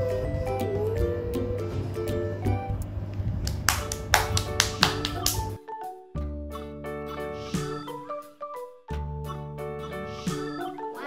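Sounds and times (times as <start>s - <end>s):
background music: 0.0s - 11.0s
child clapping hands: 3.4s - 5.6s.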